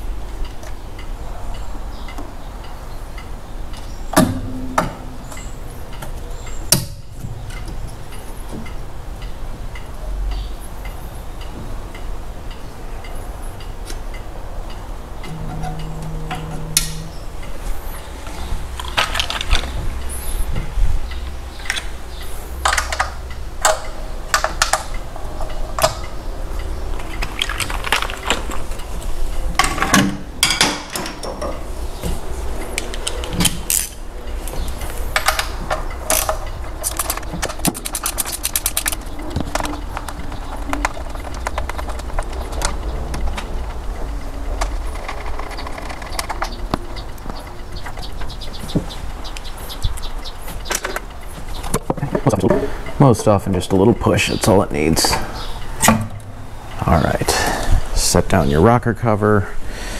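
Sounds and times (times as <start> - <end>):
low hum: 4.0 - 29.6.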